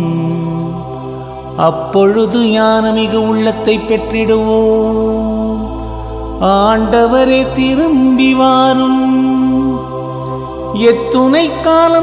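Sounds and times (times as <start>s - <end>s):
person singing psalm: 0.0s - 12.0s.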